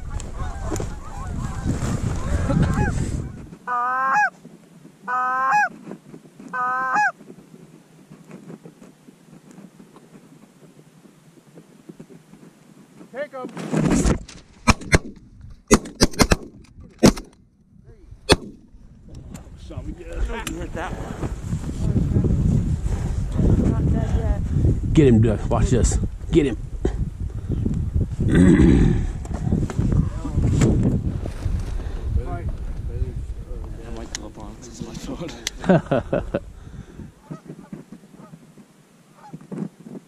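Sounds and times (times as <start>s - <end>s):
geese honking: 0.0s - 4.3s, 5.0s - 5.7s, 6.5s - 7.2s, 37.2s - 38.4s
geese calling: 0.0s - 4.4s, 5.0s - 5.7s, 6.5s - 7.2s, 37.2s - 38.4s
shotgun shots: 14.6s - 17.3s, 18.3s - 18.6s.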